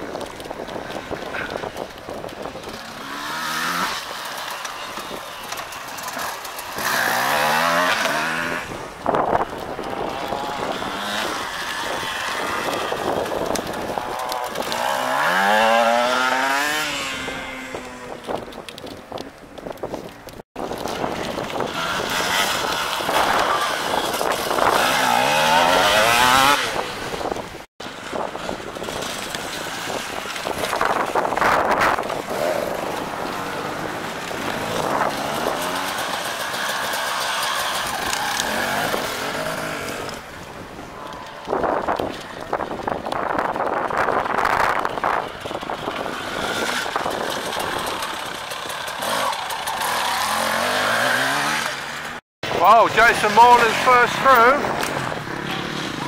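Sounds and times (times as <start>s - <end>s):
dirt bikes revving past: 0.8s - 18.5s, 20.8s - 27.4s, 28.0s - 42.6s, 43.8s - 56.0s.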